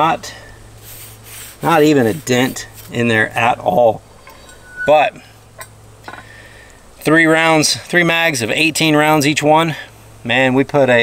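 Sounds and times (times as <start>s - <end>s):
metallic clinks of steel plate: 4.2s - 6.3s.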